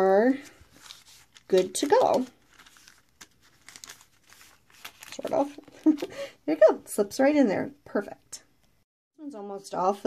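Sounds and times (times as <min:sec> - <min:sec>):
plastic sleeve and paper rustling: 0:00.3 - 0:06.2.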